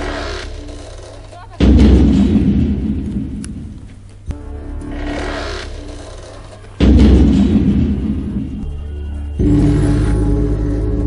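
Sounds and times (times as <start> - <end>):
deep cinematic boom: 1.6 - 3.7, 6.8 - 8.7.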